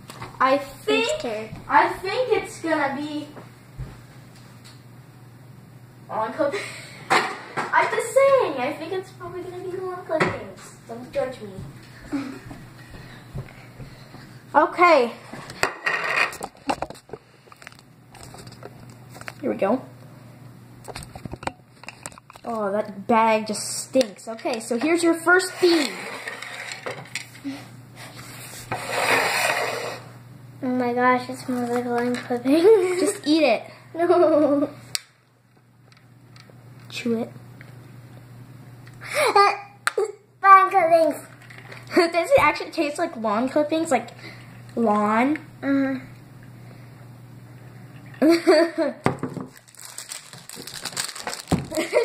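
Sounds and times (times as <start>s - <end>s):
girl laughing: 12.0s - 12.6s, 34.0s - 34.8s, 39.0s - 40.2s, 48.2s - 49.1s, 51.7s - 52.0s.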